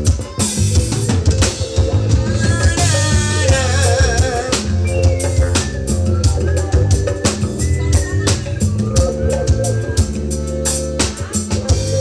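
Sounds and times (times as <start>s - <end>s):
accordion: 0.0s - 12.0s
drum kit beat: 0.0s - 12.0s
electric bass: 0.0s - 12.0s.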